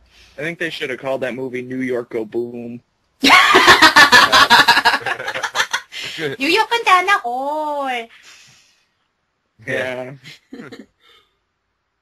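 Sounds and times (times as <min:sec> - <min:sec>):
people talking: 0:00.4 - 0:08.5, 0:09.6 - 0:10.8.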